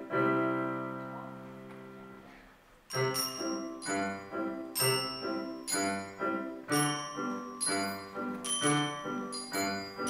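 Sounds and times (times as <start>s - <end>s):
digital piano chord ringing: 2.9s - 10.0s.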